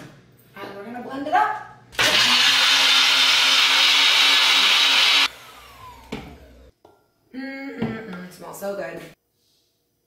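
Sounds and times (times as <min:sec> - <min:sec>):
blender motor whine: 0:02.0 - 0:06.7.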